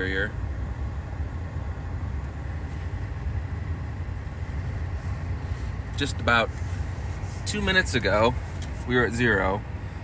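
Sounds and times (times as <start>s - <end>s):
blower pushing air through vents: 0.0s - 10.0s.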